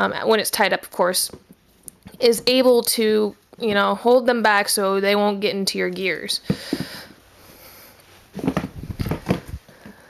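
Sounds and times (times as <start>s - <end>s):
shoes knocking on cardboard box: 8.3s - 9.6s.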